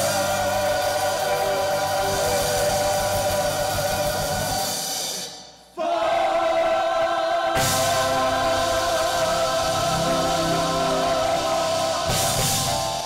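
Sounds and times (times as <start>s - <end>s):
gospel choir singing: 0.0s - 13.0s
band playing: 7.6s - 13.0s.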